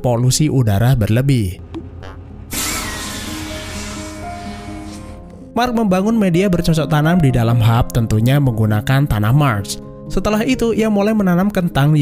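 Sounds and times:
soft background music: 0:00.0 - 0:12.0
pneumatic hiss: 0:02.5 - 0:05.3.

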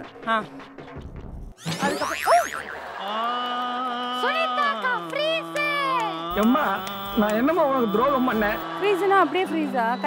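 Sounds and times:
rising boing-like sweeps: 0:01.6 - 0:02.9
steady electronic tone: 0:06.3 - 0:08.6.

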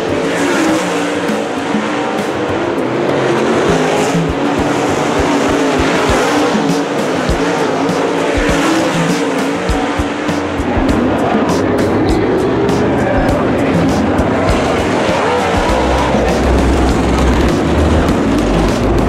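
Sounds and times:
background music: 0:00.0 - 0:19.0
race car engines running hard: 0:00.0 - 0:19.0.

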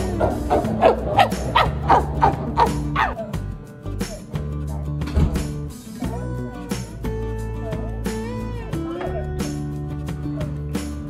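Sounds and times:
chimpanzees calling: 0:00.0 - 0:03.4
background music: 0:00.0 - 0:11.0.

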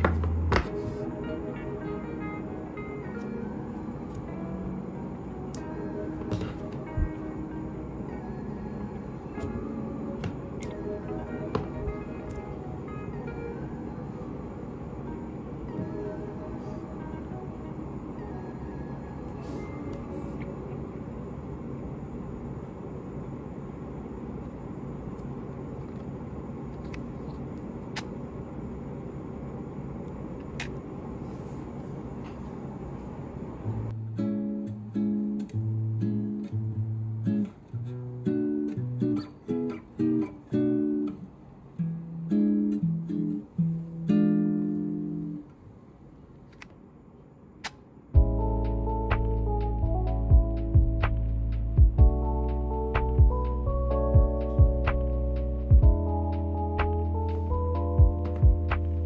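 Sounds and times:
soft hazy background music: 0:00.0 - 0:27.0, 0:47.3 - 0:59.0
plucked guitar tune with bass: 0:33.7 - 0:41.2, 0:41.8 - 0:45.4, 0:48.2 - 0:59.0.

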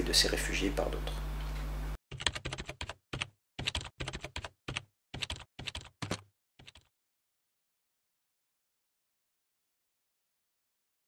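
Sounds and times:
keyboard typing clicks: 0:02.1 - 0:06.9.

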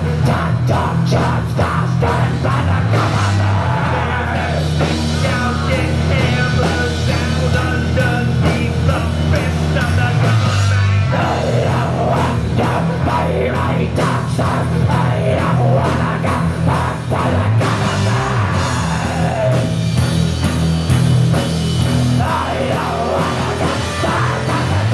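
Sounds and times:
busy drumming: 0:00.0 - 0:24.9
heavy rock band playing: 0:00.0 - 0:24.9.

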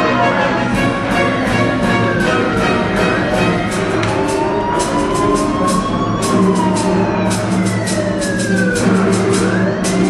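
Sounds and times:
orchestral music with ticking beat: 0:00.0 - 0:10.0
wailing siren sound effect: 0:00.6 - 0:10.0.

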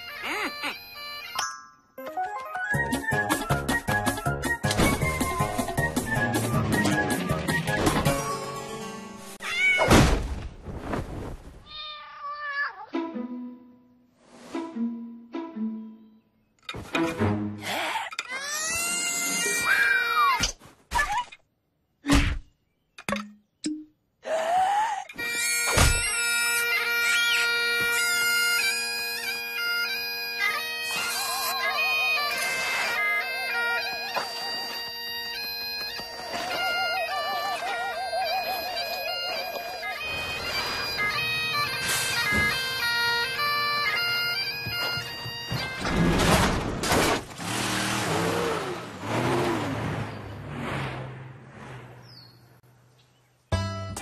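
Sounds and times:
bagpipe music: 0:00.0 - 0:01.4, 0:25.2 - 0:46.1
thuds and sliding tones: 0:40.2 - 0:43.1.

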